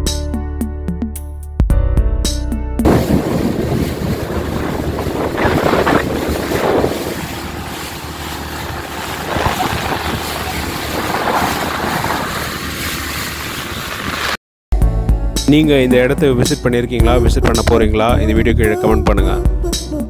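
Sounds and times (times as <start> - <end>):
water rushing past boat hull: 2.8 - 14.4
wind rushing over microphone: 2.8 - 14.4
water splashing: 2.9 - 14.4.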